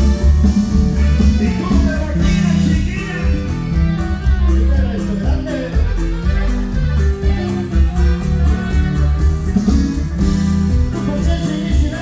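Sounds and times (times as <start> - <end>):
drum kit: 0.0 - 12.0
electric bass: 0.0 - 12.0.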